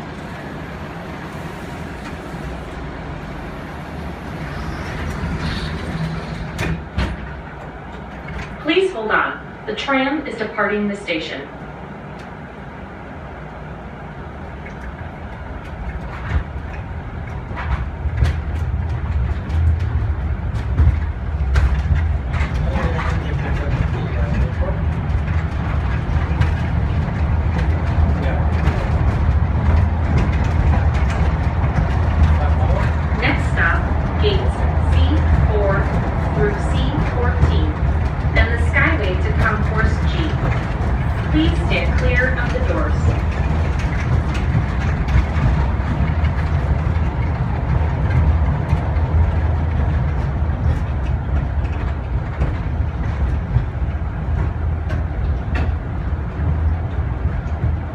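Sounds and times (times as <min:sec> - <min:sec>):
tram rumble and hum: 0:00.0 - 0:57.9
voices in the car: 0:32.2 - 0:37.8, 0:38.4 - 0:40.4, 0:41.3 - 0:43.2.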